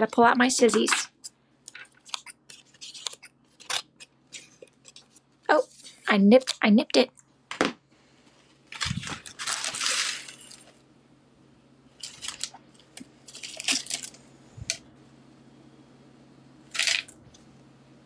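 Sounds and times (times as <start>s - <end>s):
packaging rustling: 8.7s - 10.8s, 12.0s - 14.2s.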